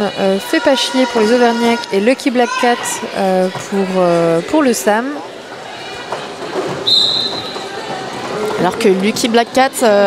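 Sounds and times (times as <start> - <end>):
crowd hum: 0.0 - 10.0
referee's whistle blast: 6.8 - 7.6.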